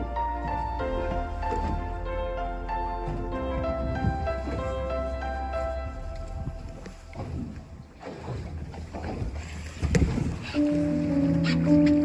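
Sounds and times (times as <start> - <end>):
music with held notes: 0.0 - 7.4, 10.6 - 12.0
water splashing against boat: 0.0 - 12.0.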